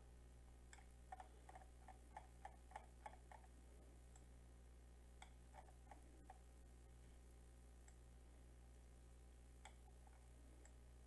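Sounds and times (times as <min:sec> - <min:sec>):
steady low hum: 0:00.0 - 0:11.0
faint light ticks: 0:07.8 - 0:08.0.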